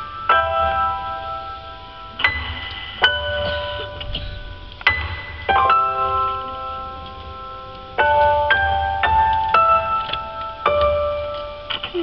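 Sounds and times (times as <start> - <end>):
bell-like keyboard chords: 0.0 - 12.0.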